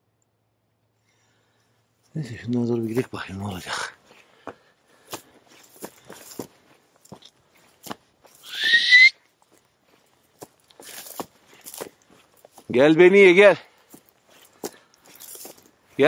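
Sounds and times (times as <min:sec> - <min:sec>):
footsteps on dry grass and stones: 0:01.9 - 0:16.0
short rising whistle: 0:08.4 - 0:09.2.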